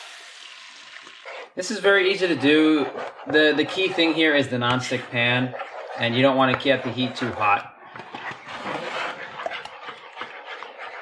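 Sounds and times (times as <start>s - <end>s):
eggs sizzling: 0.0s - 10.9s
utensil scraping frying pan: 1.2s - 11.0s.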